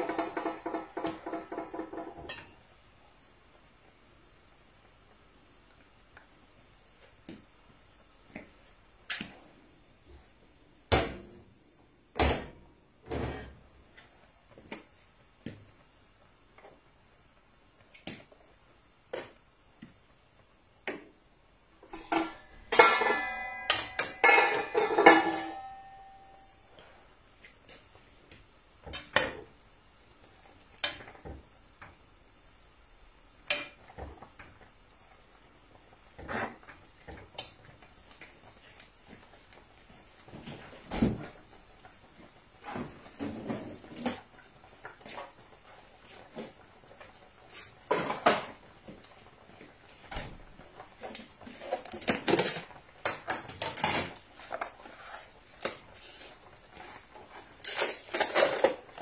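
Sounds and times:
pots and utensils clinking: 0.0 - 2.6, 21.8 - 26.9, 33.4 - 34.6, 44.9 - 49.2, 50.6 - 59.0
metallic clattering and ringing: 22.0 - 26.6.

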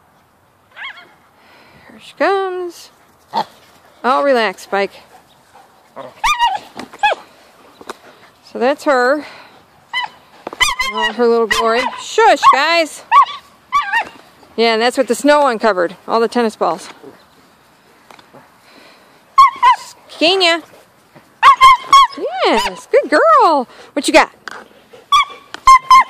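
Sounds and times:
dog yelping: 0.7 - 1.2, 6.0 - 7.3, 9.9 - 14.3, 19.4 - 20.0, 21.4 - 22.9, 25.0 - 26.0.

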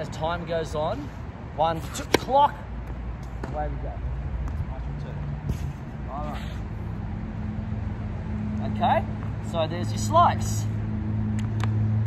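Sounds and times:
tennis ball knocks: 2.0 - 2.4.

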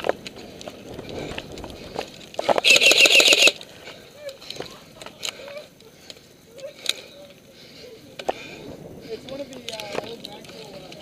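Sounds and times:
airsoft rifle full-auto burst: 2.6 - 3.6.

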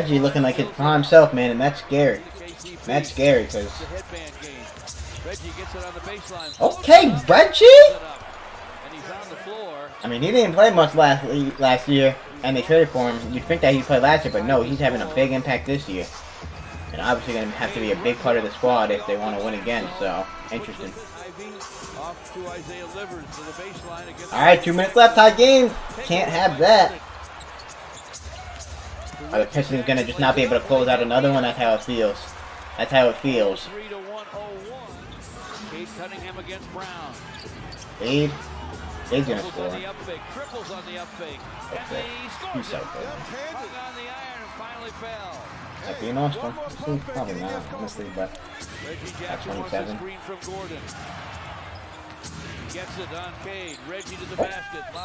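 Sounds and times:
arena crowd noise: 0.0 - 55.0.

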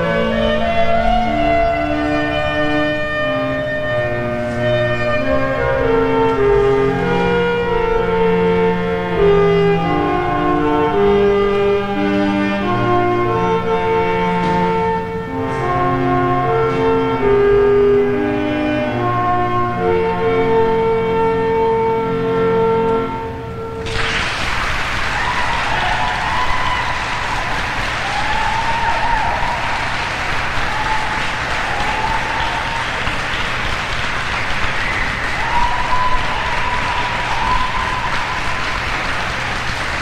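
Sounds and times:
electronic keyboard notes: 0.0 - 23.9
saxophone: 0.0 - 24.3
audience applause: 23.8 - 40.0.

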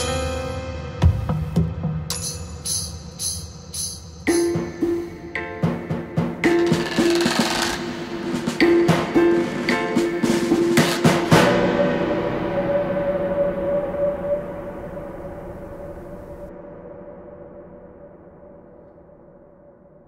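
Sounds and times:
orchestral drum hits and rolls: 4.3 - 12.5.

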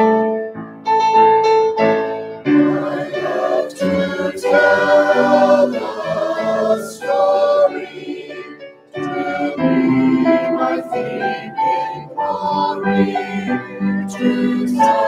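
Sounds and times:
choir singing a hymn: 2.4 - 15.0.

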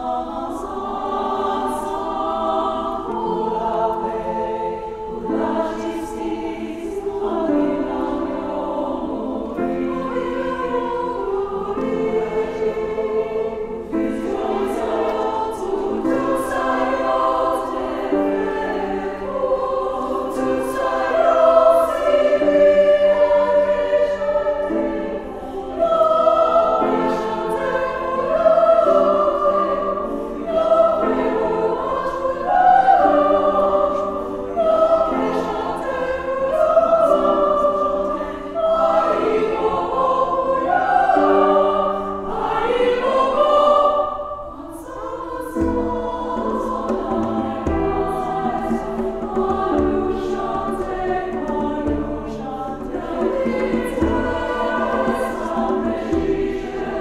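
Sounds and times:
women's choir singing: 0.0 - 57.0.

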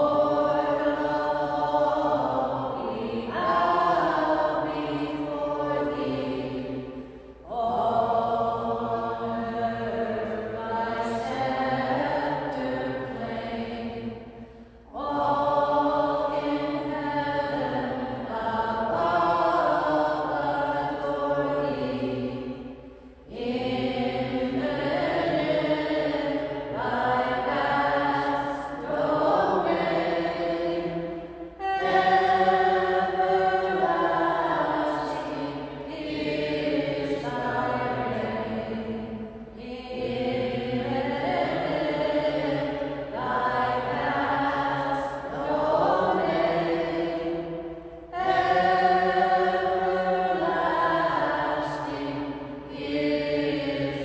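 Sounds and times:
voices singing a hymn: 0.0 - 54.0.

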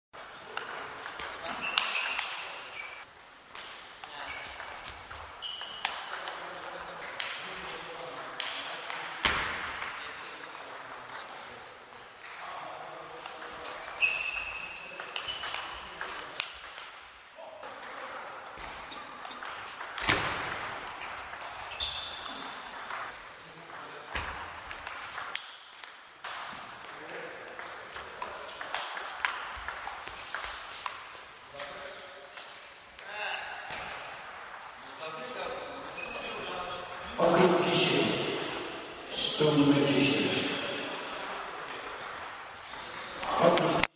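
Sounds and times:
table tennis ball hits: 18.6 - 21.5.

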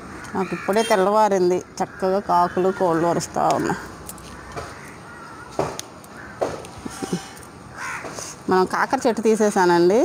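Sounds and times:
bird calling: 0.2 - 8.3.

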